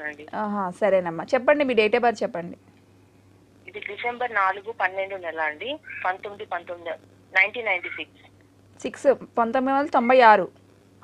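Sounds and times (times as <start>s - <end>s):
steady low hum: 0.0s - 11.0s
person speaking over telephone: 3.7s - 8.3s.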